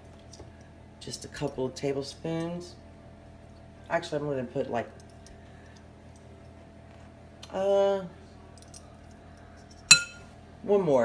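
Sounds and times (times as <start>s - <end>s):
faint steady hum: 0.0s - 11.0s
spoon clinking glass bowl: 9.9s - 10.2s.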